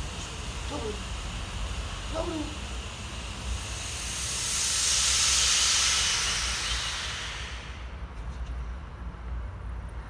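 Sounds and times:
hiss: 0:00.0 - 0:08.2.

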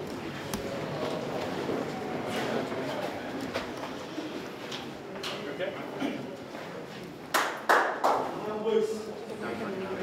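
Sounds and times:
faint background voices: 0:00.1 - 0:07.3.

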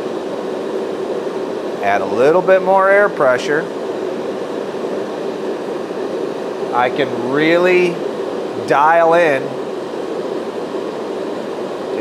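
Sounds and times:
forge burner roaring: 0:00.0 - 0:12.0.

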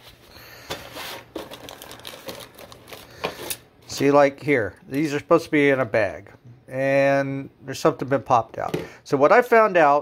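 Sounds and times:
plastic bags crinkling: 0:01.0 - 0:03.6.

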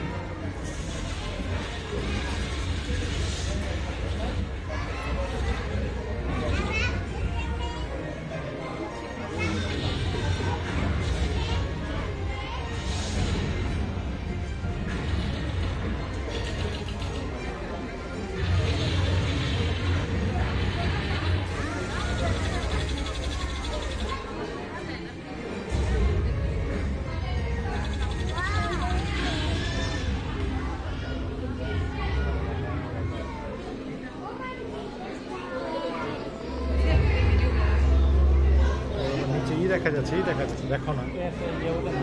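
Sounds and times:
people and children talking: 0:00.0 - 0:42.0
people chattering: 0:00.0 - 0:42.0
film soundtrack deep rumble: 0:09.7 - 0:24.3.

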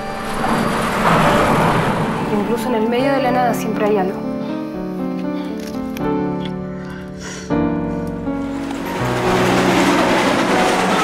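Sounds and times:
loud toneless rushing noise: 0:00.0 - 0:03.0, 0:08.4 - 0:11.0
faint music: 0:00.0 - 0:11.0.

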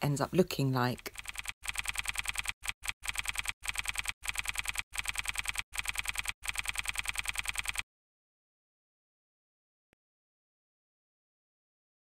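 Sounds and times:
rapid keyboard typing clicks: 0:01.0 - 0:07.8.

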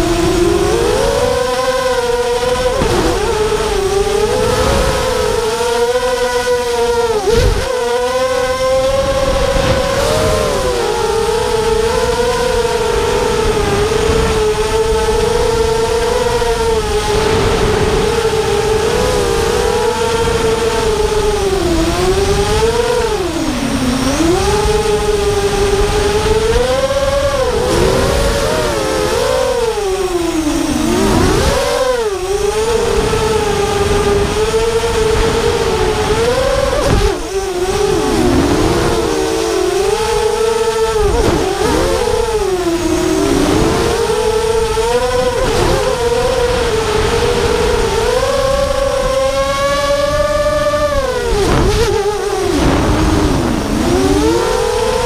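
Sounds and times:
drone motors whining: 0:00.0 - 0:55.0.

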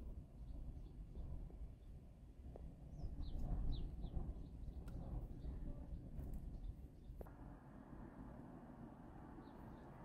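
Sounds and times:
low rumble of street traffic: 0:00.0 - 0:10.0.

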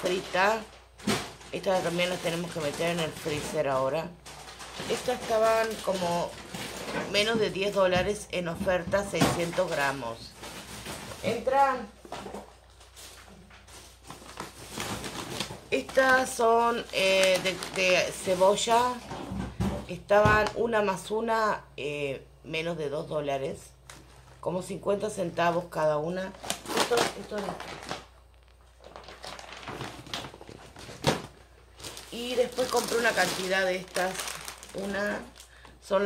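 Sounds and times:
plastic bag rustling and knocking: 0:00.0 - 0:20.7, 0:26.4 - 0:35.8.

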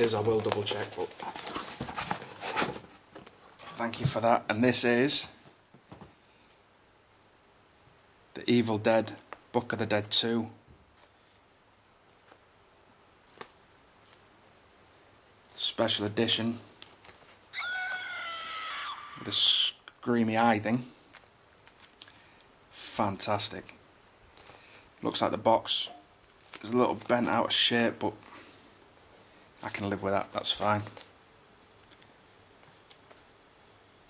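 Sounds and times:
high-pitched scream: 0:17.5 - 0:19.7.

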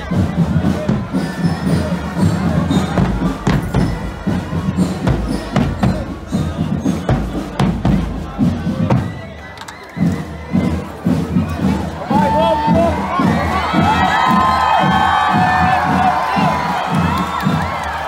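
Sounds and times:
crowd chatter and cheers: 0:00.0 - 0:18.0
marching bass drums: 0:00.0 - 0:18.0
marching drum band playing: 0:00.0 - 0:18.0.

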